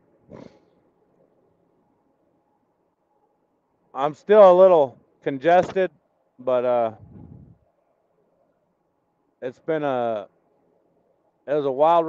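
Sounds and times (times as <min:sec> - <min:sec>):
man sniffing through congested nose: 0:00.3 - 0:00.8.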